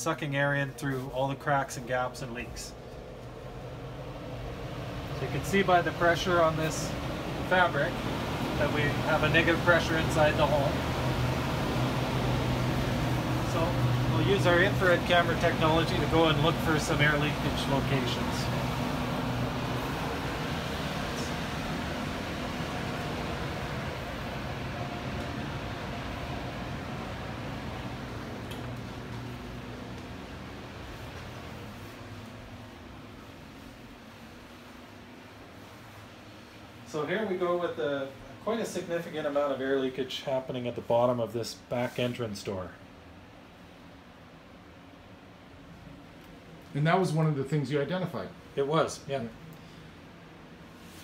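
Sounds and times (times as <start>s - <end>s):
fan blowing air: 0.0s - 51.0s.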